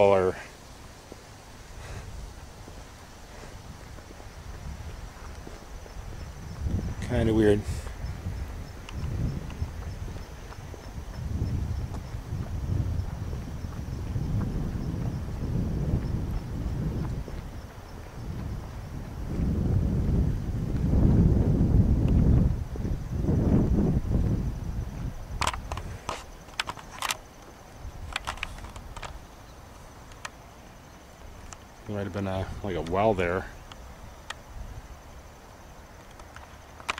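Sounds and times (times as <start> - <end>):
footsteps on grass: 0.0 - 21.3
wind buffeting microphone: 0.0 - 36.9
sharp clicks: 25.4 - 29.2, 30.1 - 30.4, 36.0 - 36.9.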